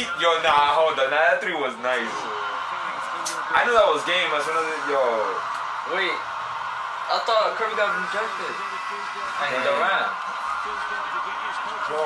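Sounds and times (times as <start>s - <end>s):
background talking: 7.2s - 12.0s.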